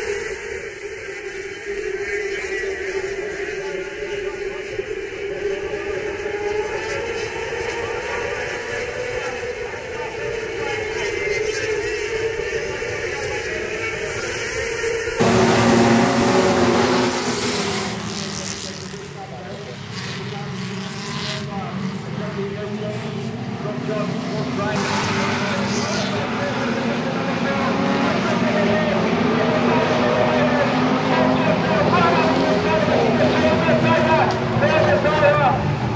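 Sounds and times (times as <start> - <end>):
racing car engines droning: 0.0 - 35.9.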